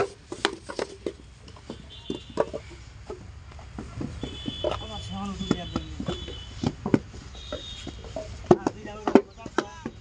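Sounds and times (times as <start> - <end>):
wooden moulds knocking on ground: 0.0 - 10.0.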